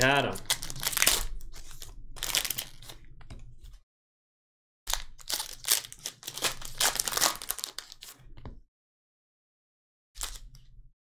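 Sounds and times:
foil wrapper crinkling and tearing: 0.0s - 3.0s, 4.9s - 8.2s, 10.2s - 10.5s.

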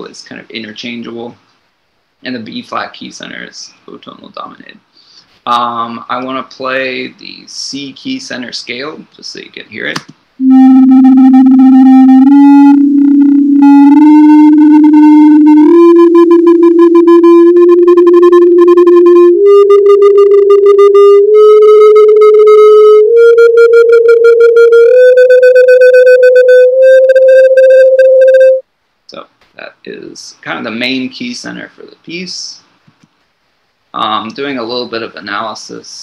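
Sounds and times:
synthesized tone rising scale: 10.4s - 28.6s.

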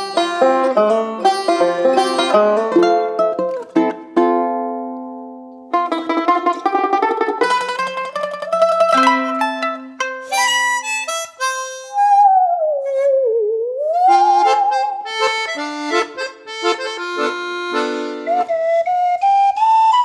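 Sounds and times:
plucked string instruments playing: 0.0s - 19.7s.

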